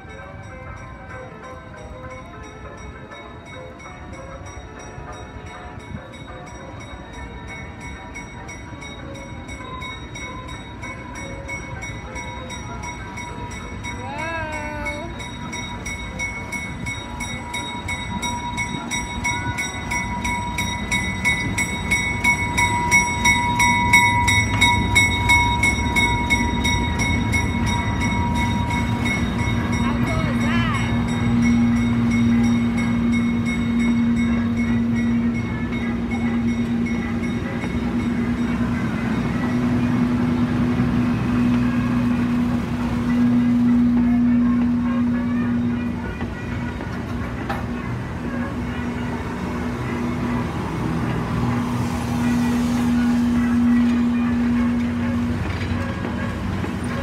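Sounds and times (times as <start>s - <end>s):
locomotive bell ringing: 0.0s - 57.0s
locomotive rolling past: 0.0s - 57.0s
passenger coaches rolling by: 0.0s - 57.0s.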